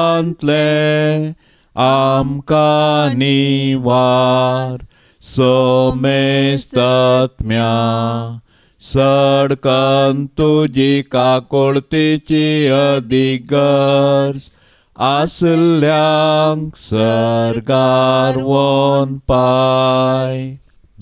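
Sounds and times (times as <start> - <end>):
man chanting: 0.0 - 20.6.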